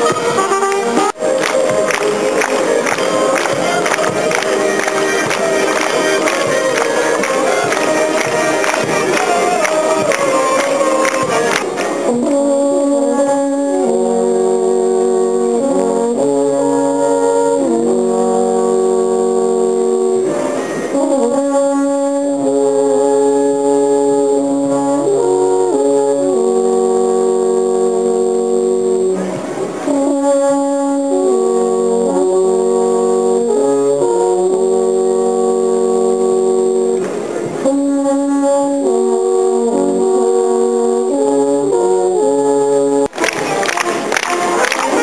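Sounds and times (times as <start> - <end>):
alphorns playing in harmony: 0.0 - 45.0
crowd noise: 0.0 - 45.0
music: 0.0 - 45.0.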